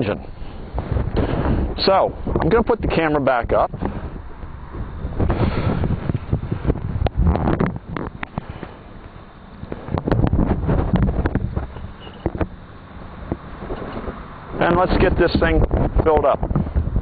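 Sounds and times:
wind buffeting microphone: 0:00.0 - 0:17.0
microphone handling noise: 0:00.6 - 0:02.6, 0:03.7 - 0:12.6, 0:13.2 - 0:17.0.

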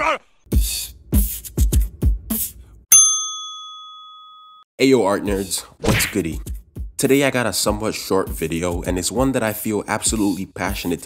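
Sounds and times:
bell-like ding: 0:02.9 - 0:04.7.

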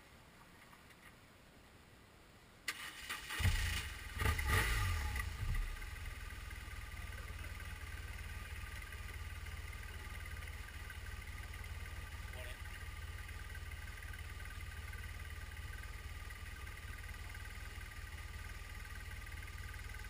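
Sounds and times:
motorcycle engine starting and idling: 0:02.7 - 0:20.0.

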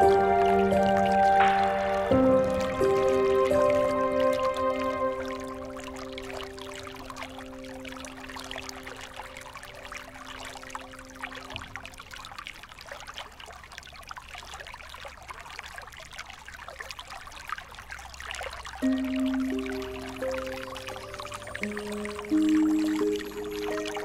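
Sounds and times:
calm instrumental music: 0:00.0 - 0:11.5, 0:18.8 - 0:24.0
water trickling: 0:00.0 - 0:24.0.

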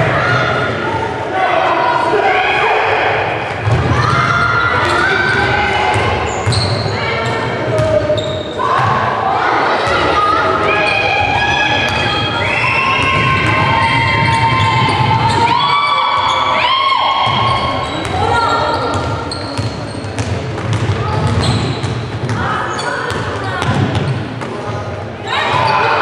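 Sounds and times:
basketball bouncing on court floor: 0:03.6 - 0:06.9, 0:11.3 - 0:12.2, 0:17.2 - 0:22.5, 0:23.1 - 0:24.5.

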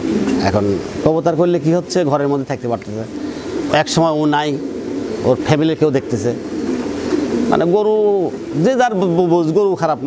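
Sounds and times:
pigeon cooing: 0:00.0 - 0:10.0.

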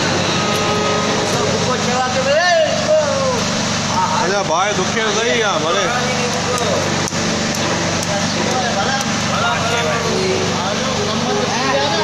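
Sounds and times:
hubbub: 0:00.0 - 0:12.0.

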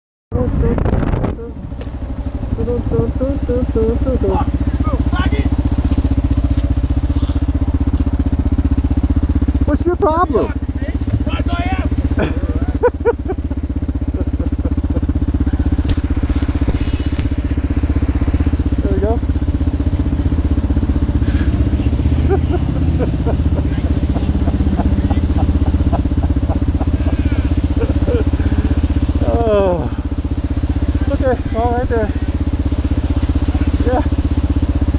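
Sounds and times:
motorcycle engine idling: 0:00.4 - 0:34.9.

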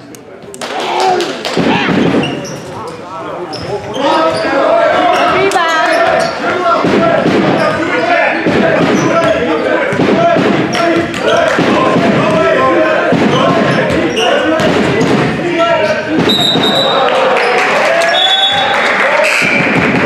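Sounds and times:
people chattering and shouting: 0:00.0 - 0:20.0.

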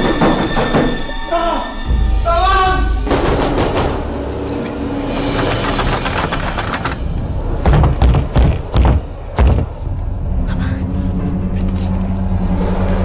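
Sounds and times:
heavy booming hits: 0:01.9 - 0:04.4, 0:05.1 - 0:09.8
fast dense clattering rattle: 0:05.2 - 0:09.6.

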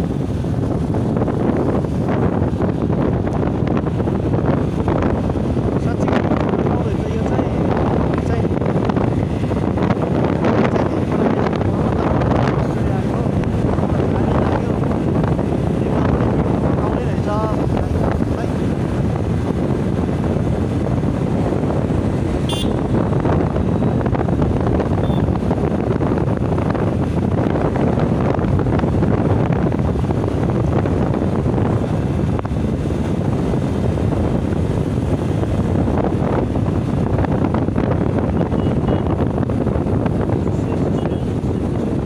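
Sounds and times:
vehicle rumbling along road: 0:00.0 - 0:42.0
wind buffeting microphone: 0:00.0 - 0:42.0.

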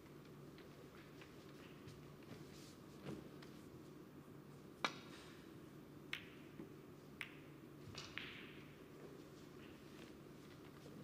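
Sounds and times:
snooker balls clicking: 0:06.1 - 0:08.8.

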